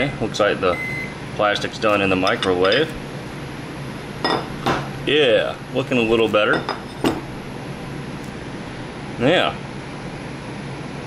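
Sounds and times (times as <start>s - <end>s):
metal mold halves clinking: 1.9s - 3.0s.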